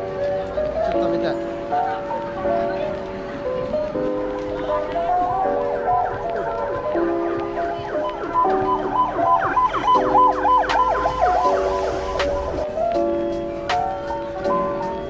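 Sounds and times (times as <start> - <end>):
ambulance siren wailing: 3.8 - 13.0.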